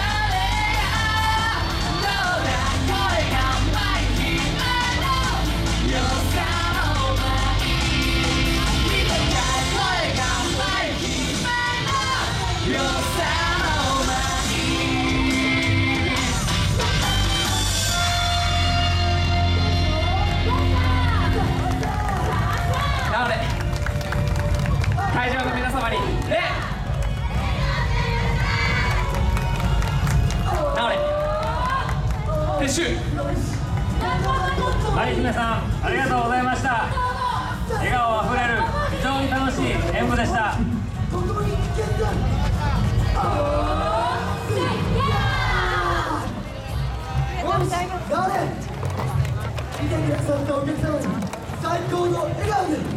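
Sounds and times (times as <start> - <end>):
dance music: 0.0 - 52.9
outdoor crowd noise: 0.0 - 52.9.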